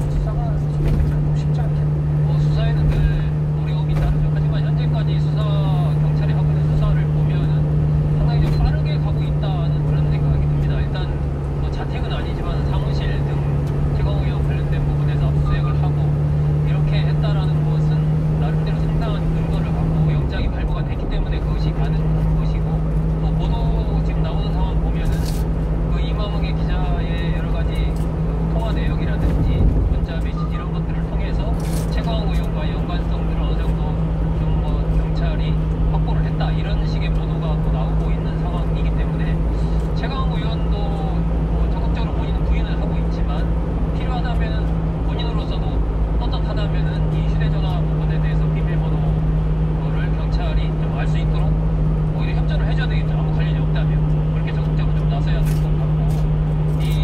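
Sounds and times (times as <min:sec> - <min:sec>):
radio news talk: 0:00.0 - 0:57.0
truck engine and road noise: 0:00.0 - 0:57.0.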